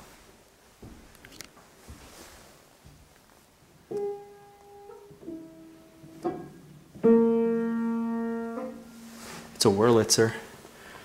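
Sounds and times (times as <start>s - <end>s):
upright piano notes and chord: 3.9s - 9.6s.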